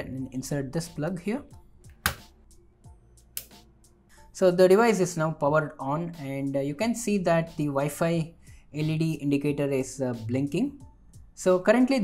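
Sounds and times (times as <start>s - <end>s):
plug clicking into socket: 1.9s - 2.3s
lighter click: 3.4s - 3.6s.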